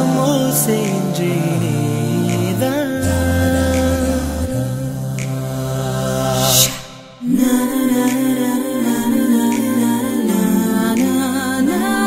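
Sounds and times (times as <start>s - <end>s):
a cappella voices holding a chord: 0.0s - 12.0s.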